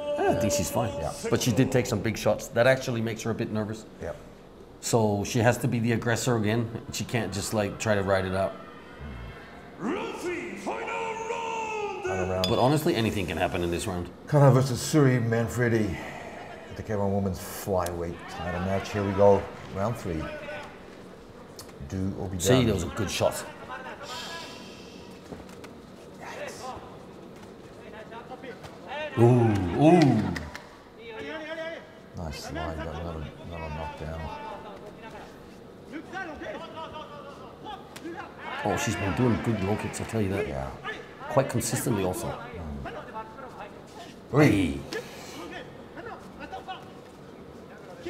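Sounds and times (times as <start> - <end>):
faint voices calling out: 0.0 - 2.3, 6.2 - 12.6
faint shouting voices: 0.0 - 2.5, 6.2 - 12.6, 15.5 - 21.8, 27.8 - 48.0.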